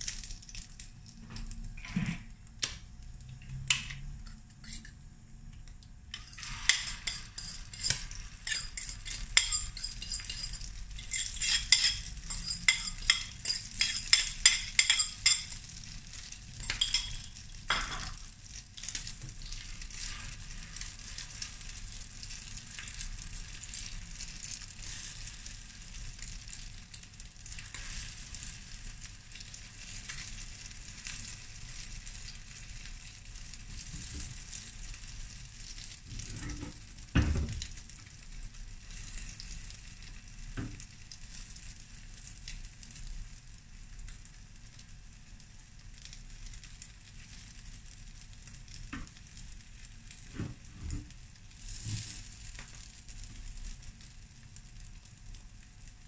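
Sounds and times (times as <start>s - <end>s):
omelette sizzling on a griddle: 0.0s - 56.0s
spatula knocking and scraping pan: 6.1s - 15.6s.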